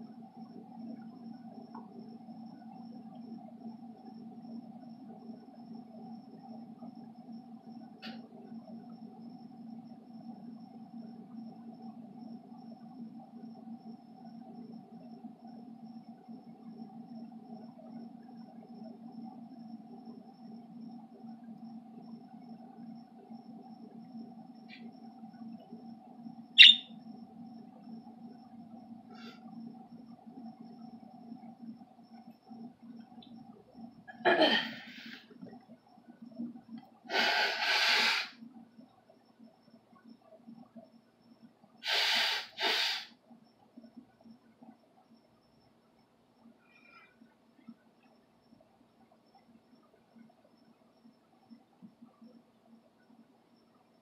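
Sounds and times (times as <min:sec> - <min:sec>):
steady low hum: 0:00.0 - 0:54.0
budgerigar chirping: 0:26.6 - 0:26.8.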